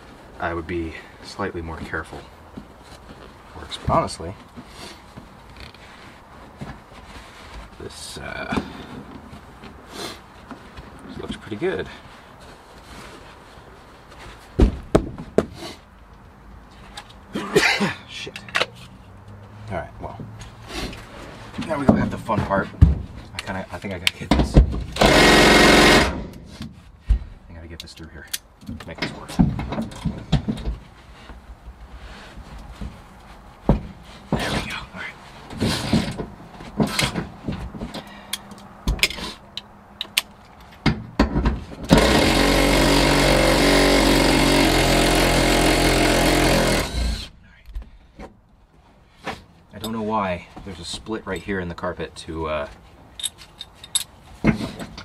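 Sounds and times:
faint handling sounds: 0:00.0 - 0:14.6
impact driver hammering: 0:25.0 - 0:26.4, 0:41.9 - 0:47.3.

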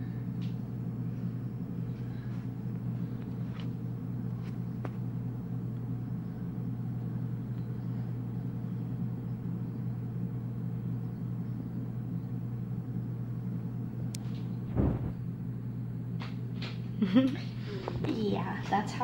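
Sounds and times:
steady low hum: 0:00.0 - 0:19.0
brief low thump: 0:14.7 - 0:15.2.

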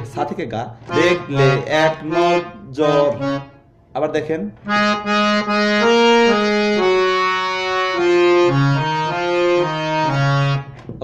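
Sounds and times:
harmonium melody: 0:00.0 - 0:03.8, 0:04.6 - 0:10.9.

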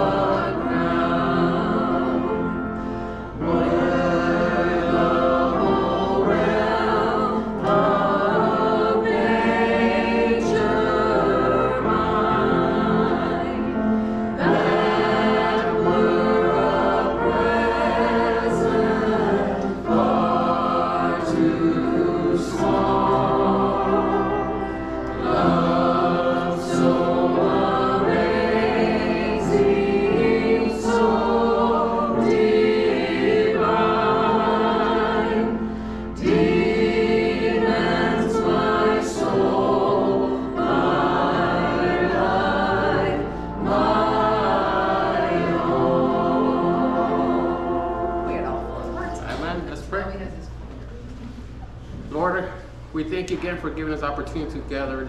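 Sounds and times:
congregation singing a hymn: 0:00.0 - 0:55.0.

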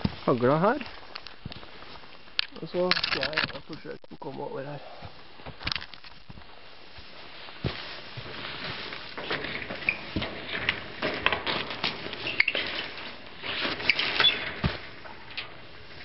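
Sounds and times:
clothing and backpack rustling: 0:00.0 - 0:03.6, 0:04.3 - 0:16.0.

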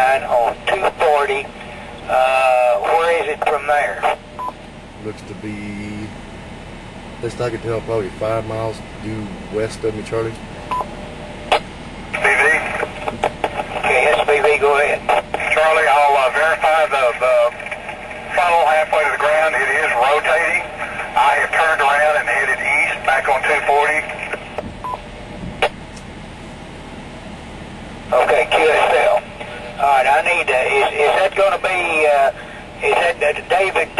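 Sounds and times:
tinny voice over radio speaker: 0:00.0 - 0:01.5, 0:02.1 - 0:04.2, 0:12.2 - 0:24.4, 0:28.1 - 0:33.9
radio click: 0:11.5 - 0:15.8.

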